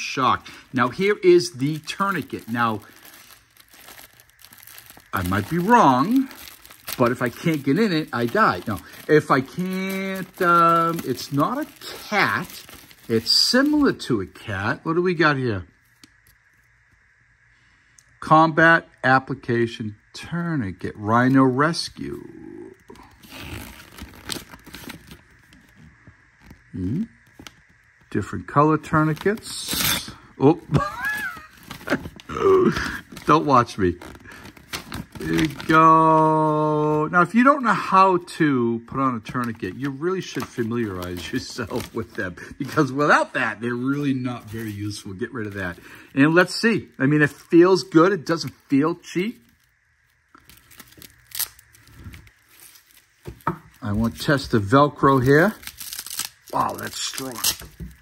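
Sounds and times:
paper leaflet rustling: 0:00.0 - 0:13.9, 0:30.7 - 0:36.5, 0:39.3 - 0:49.7, 0:50.4 - 0:58.0.

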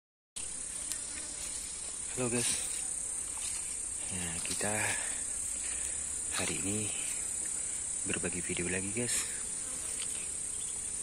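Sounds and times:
insect chorus drone: 0:00.4 - 0:11.0.

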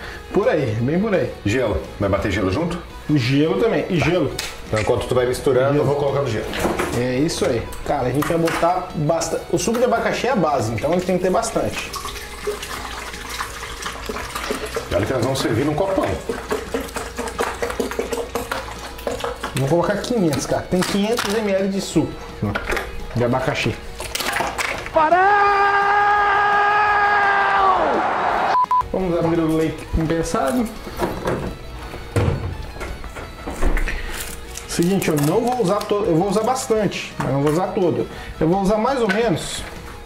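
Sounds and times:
background music: 0:00.0 - 0:40.0
liquid pouring into blender jar: 0:11.8 - 0:20.4.

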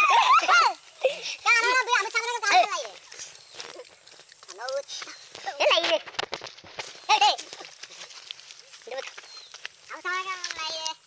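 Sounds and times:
rustling: 0:00.7 - 0:11.0.

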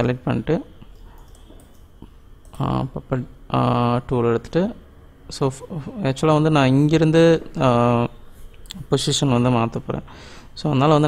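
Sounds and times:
low steady hum: 0:00.0 - 0:11.0
computer mouse clicks: 0:00.9 - 0:02.7.

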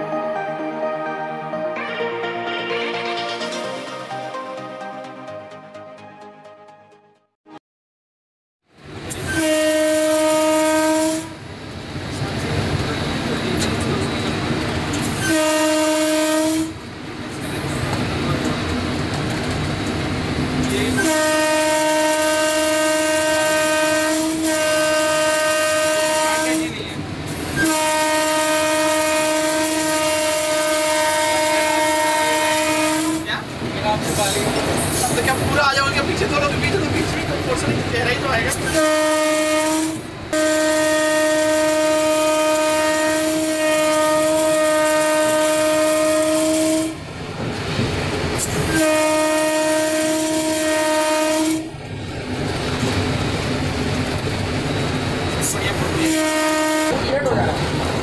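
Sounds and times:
locomotive running noise: 0:08.8 - 0:58.0
locomotive horn blasts: 0:09.1 - 0:11.5, 0:15.0 - 0:16.9, 0:20.6 - 0:33.4, 0:38.6 - 0:47.1, 0:48.6 - 0:51.9, 0:55.8 - 0:57.5
locomotive rumble and rattle: 0:11.5 - 0:15.4, 0:16.9 - 0:24.0, 0:47.0 - 0:58.0.

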